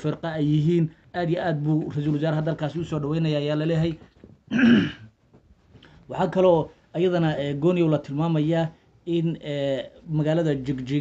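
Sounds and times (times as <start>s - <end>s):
man clearing throat: 4.5s - 5.1s.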